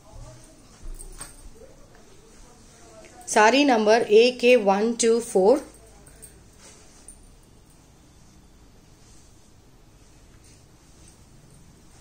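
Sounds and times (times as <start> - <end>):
fabric rustling: 0.0 - 4.6, 5.3 - 12.0.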